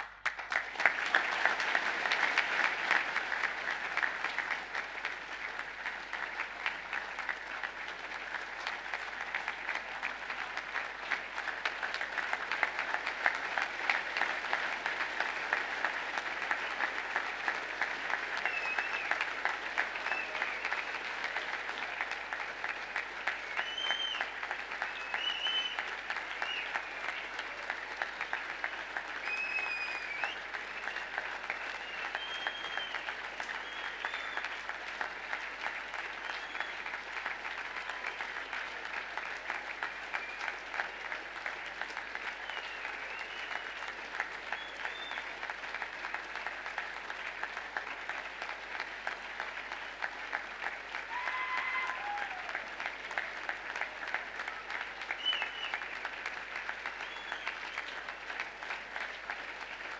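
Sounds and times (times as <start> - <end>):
crowd applause: 0.0 - 59.9.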